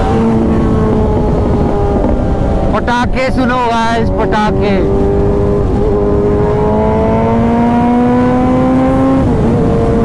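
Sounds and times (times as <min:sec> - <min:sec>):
motorcycle engine revving: 0:00.0 - 0:10.0
wind and road rush: 0:00.0 - 0:10.0.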